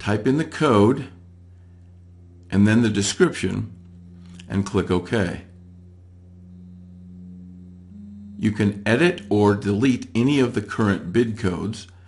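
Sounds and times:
low steady drone: 0.0 - 12.0.

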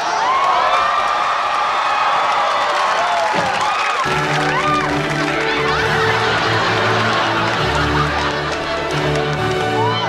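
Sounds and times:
audience cheering and whooping: 0.0 - 10.0.

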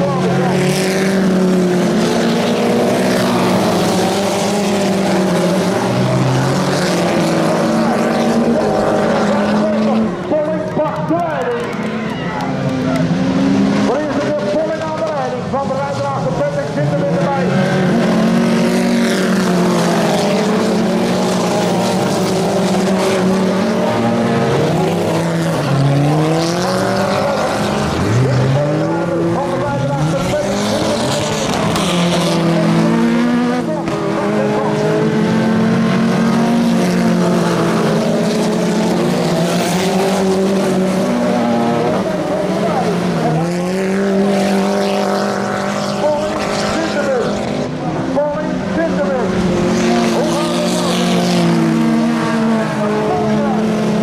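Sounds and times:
racing car engines revving: 0.0 - 54.0.

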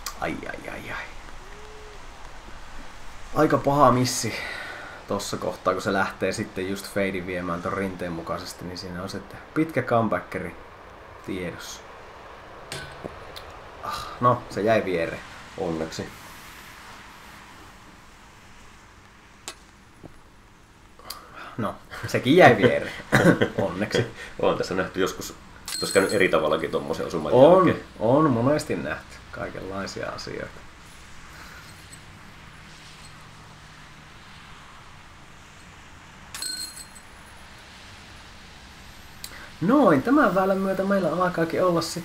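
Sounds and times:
steady outdoor hiss: 0.0 - 42.0
disc striking metal chains: 25.7 - 26.2, 36.3 - 37.3
bell-like ringing tones: 25.7 - 26.3, 36.3 - 37.2.

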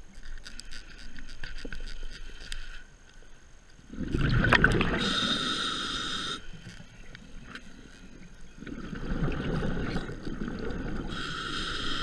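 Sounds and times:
rumble of exhaled bubbles: 3.9 - 5.2, 8.5 - 11.1
hissing regulator inhale: 4.9 - 6.6, 11.0 - 12.0.

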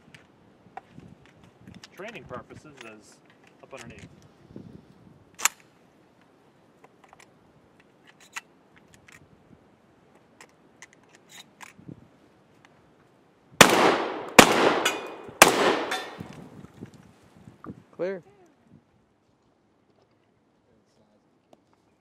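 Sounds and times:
light handling clicks: 1.2 - 4.3
shotgun shots echoing: 13.6 - 16.4.

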